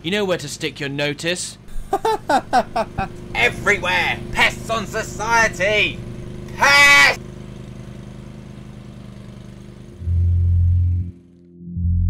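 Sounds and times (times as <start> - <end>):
small lawnmower engine running: 1.7 - 10.2
deep synthesizer bass note: 10.0 - 12.0.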